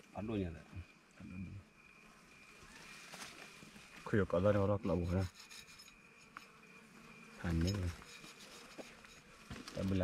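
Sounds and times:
knife scraping hide: 0:04.8 - 0:06.6, 0:07.5 - 0:09.4.

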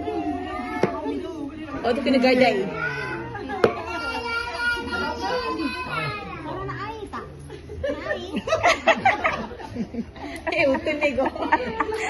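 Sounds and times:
children's voices: 0:00.0 - 0:09.2.

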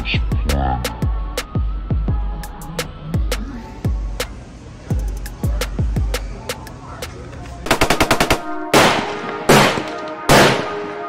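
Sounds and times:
machine-gun burst: 0:07.7 - 0:10.8
heavy single gunshots ringing: 0:07.7 - 0:11.0
held brass-like music chord: 0:08.5 - 0:11.0.

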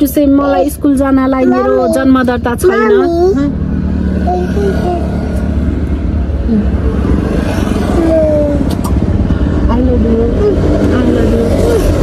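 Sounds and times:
kiss smacks: 0:08.6 - 0:09.0.

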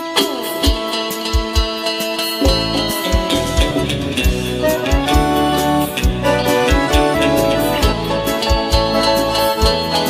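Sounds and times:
accordion: 0:00.0 - 0:10.0
electric guitar melody: 0:00.0 - 0:10.0
percussion beat: 0:00.0 - 0:10.0
bass: 0:02.4 - 0:10.0.

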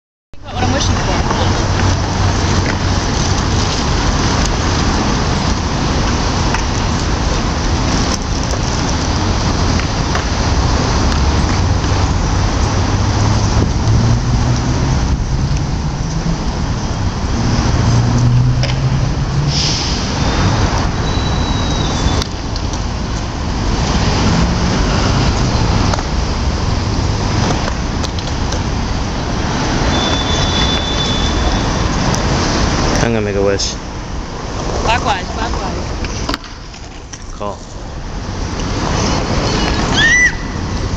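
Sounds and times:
road traffic noise: 0:00.4 - 0:40.9
vehicle engine rising in pitch: 0:11.7 - 0:22.2.

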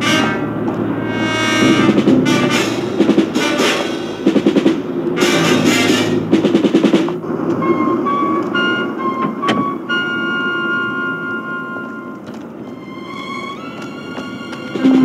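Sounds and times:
low rumbling bed: 0:00.0 - 0:10.0
held high notes: 0:00.0 - 0:15.0.

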